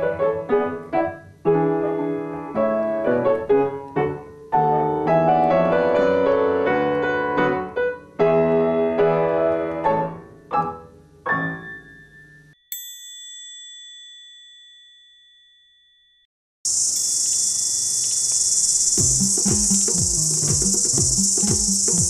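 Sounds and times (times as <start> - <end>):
bell-like chime: 12.3 - 16.3
high-pitched insect chorus: 16.7 - 22.0
music with low repeating beat: 19.0 - 22.0.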